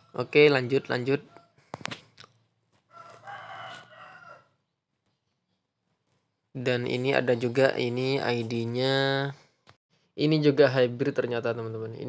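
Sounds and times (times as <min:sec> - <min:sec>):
rooster crowing: 0:02.9 - 0:04.6.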